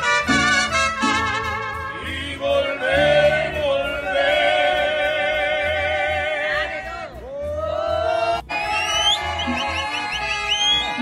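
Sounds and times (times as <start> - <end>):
mariachi band playing: 0.0 - 11.0.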